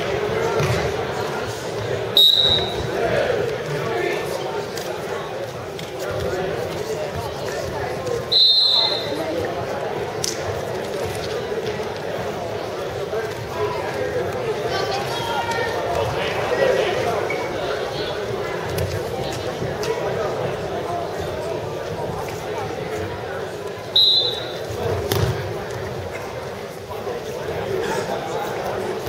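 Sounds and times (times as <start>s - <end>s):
crowd chatter: 0.0s - 29.0s
referee's whistle blast: 2.2s - 2.8s, 8.3s - 9.2s, 23.9s - 24.6s.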